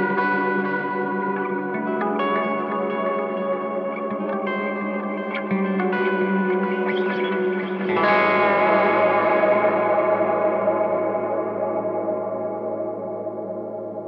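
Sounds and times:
overdriven electric guitar with reverb: 0.0s - 14.0s
loud deep guitar chord: 7.8s - 14.0s.

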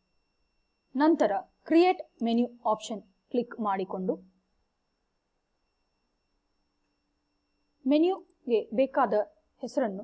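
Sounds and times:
faint steady electronic tone: 0.0s - 10.0s.

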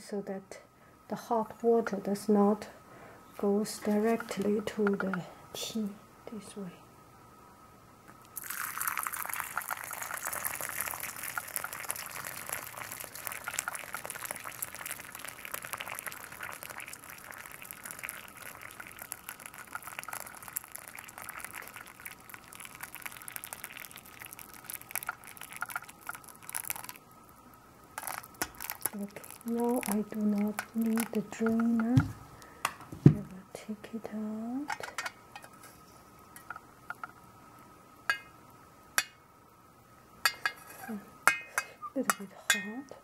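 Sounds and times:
water pouring into glass teapot: 8.2s - 27.0s, 28.0s - 32.0s.

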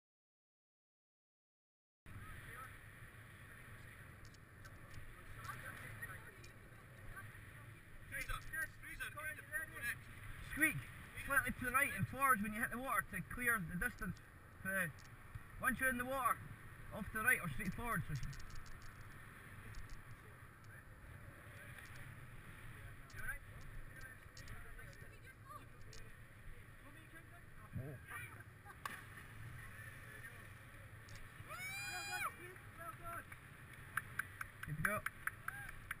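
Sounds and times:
people calling out: 31.5s - 32.4s.

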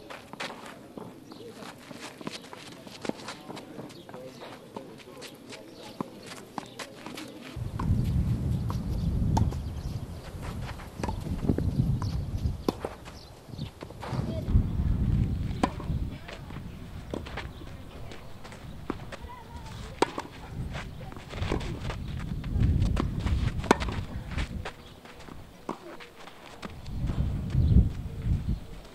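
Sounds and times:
tennis balls bouncing on clay: 0.0s - 28.9s
wind buffeting microphone: 7.6s - 25.5s, 26.6s - 28.9s
tennis balls struck by rackets: 8.7s - 9.7s, 10.7s - 14.6s, 15.4s - 27.3s.

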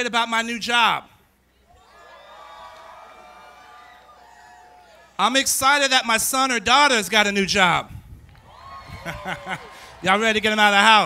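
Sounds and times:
audience cheering and whooping: 1.7s - 5.2s, 8.3s - 11.0s.

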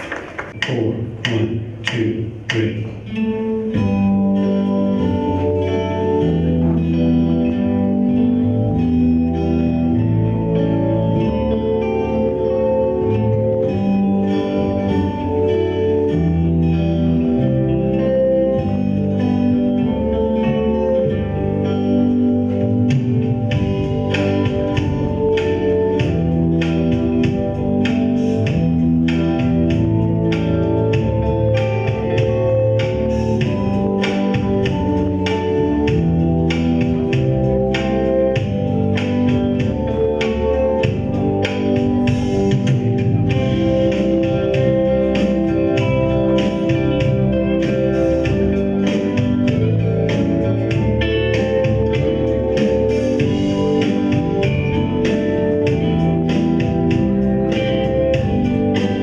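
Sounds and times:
acoustic guitars playing: 0.0s - 59.0s
strummed guitar chords: 0.0s - 59.0s.

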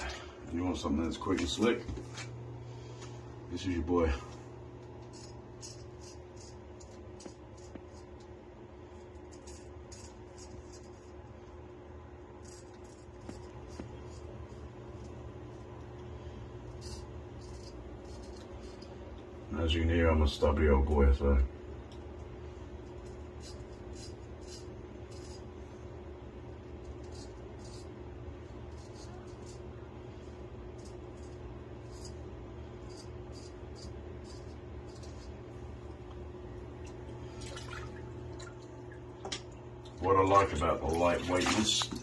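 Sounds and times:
low room hum: 0.0s - 42.0s
straight razor scraping stubble: 4.8s - 8.3s, 12.4s - 15.3s, 16.6s - 19.0s, 22.9s - 25.6s, 30.6s - 35.7s.

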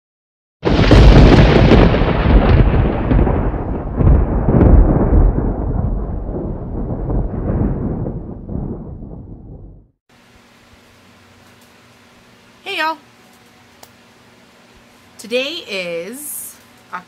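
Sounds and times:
rolling thunder rumble: 0.6s - 10.0s.

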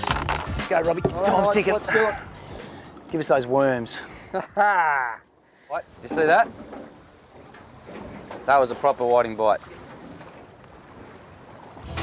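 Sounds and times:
sea noise: 0.0s - 12.0s
wind: 0.0s - 12.0s.

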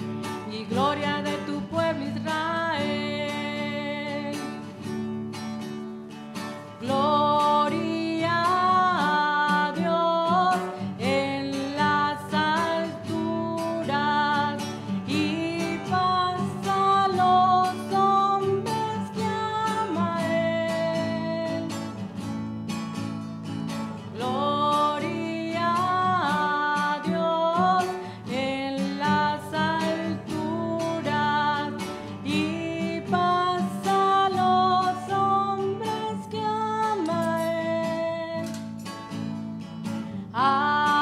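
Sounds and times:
strummed acoustic guitar: 0.0s - 41.0s
person singing a hymn: 24.2s - 38.6s.

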